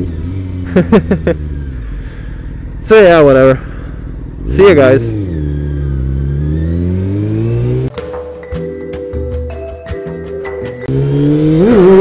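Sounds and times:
motorcycle engine revving: 0.0 - 8.0, 10.8 - 12.0
music with a beat: 7.9 - 10.9.

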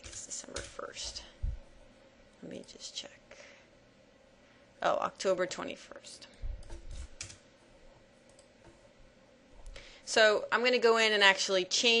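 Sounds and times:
computer mouse clicks: 6.3 - 7.4, 8.3 - 8.8.

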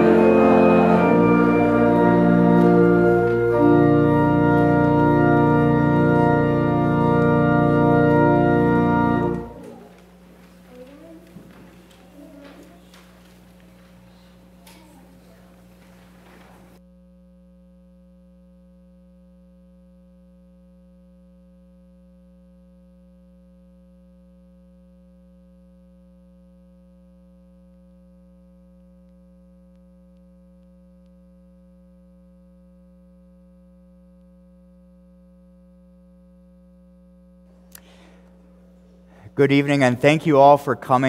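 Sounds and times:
faint electrical hum: 0.0 - 41.0.

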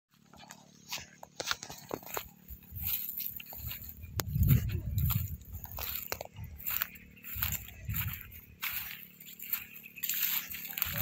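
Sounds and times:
footsteps through dry grass: 0.1 - 11.0
wind rumble on microphone: 2.5 - 9.6.

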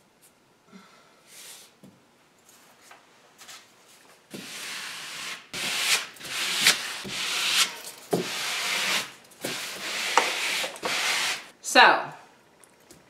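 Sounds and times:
card scraping paper on wall: 4.3 - 11.5.

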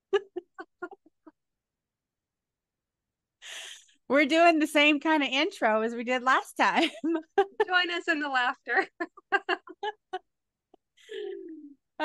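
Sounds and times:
woman laughing: 0.0 - 1.5, 6.8 - 10.3.

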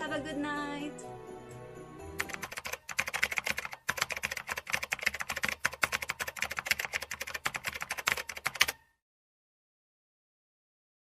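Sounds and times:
rapid keyboard typing: 2.2 - 8.8.

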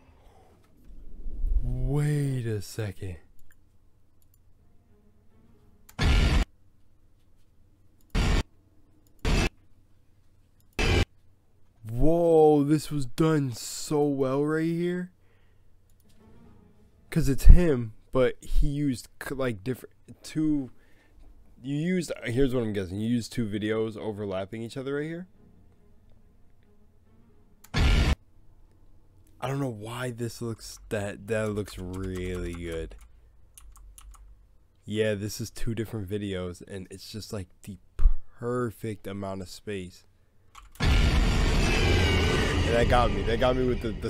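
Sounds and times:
harsh noise bursts: 6.0 - 6.5, 8.1 - 8.4, 9.2 - 9.5, 10.8 - 11.1, 27.7 - 28.2, 40.8 - 44.0
loud bass-heavy hit: 40.8 - 44.0.

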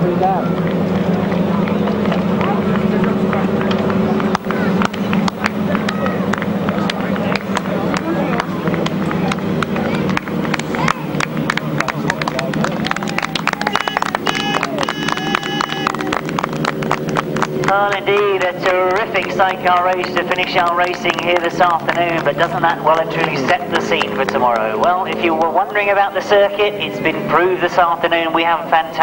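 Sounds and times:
engine popping: 0.0 - 29.0
motorcycle engines at low revs: 0.0 - 29.0
unclear voice: 17.7 - 29.0.

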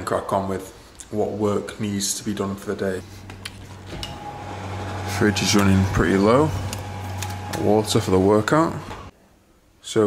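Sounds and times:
drinks fridge humming: 3.0 - 9.1.

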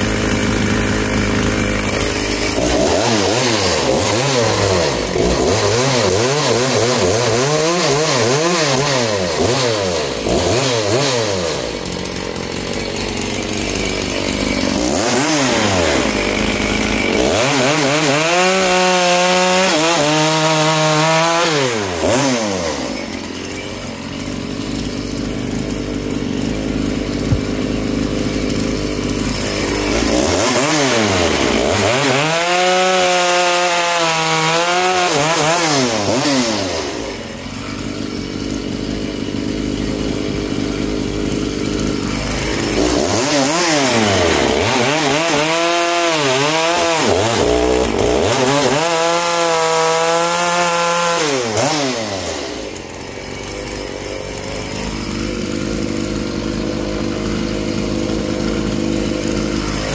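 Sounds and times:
chainsaw revving while cutting log: 0.0 - 59.9.

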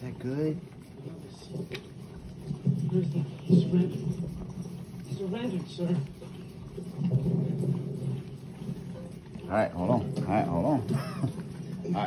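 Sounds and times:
dog licking ice cream: 0.0 - 12.0.

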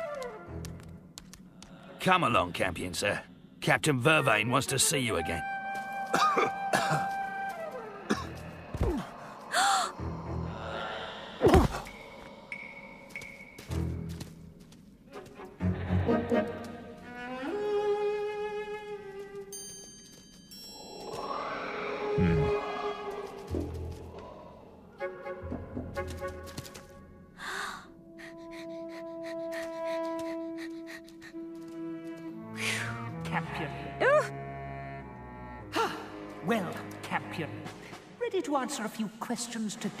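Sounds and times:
quiet background music: 0.0 - 21.2, 22.5 - 40.0
person gasping: 8.1 - 13.1, 27.4 - 31.4.

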